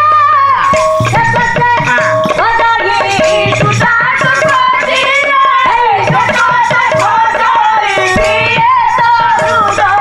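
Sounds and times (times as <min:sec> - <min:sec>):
drum strokes: 0:00.4 - 0:10.0
steady jingling rattle: 0:00.6 - 0:10.0
sliding held-note melody: 0:00.7 - 0:03.7.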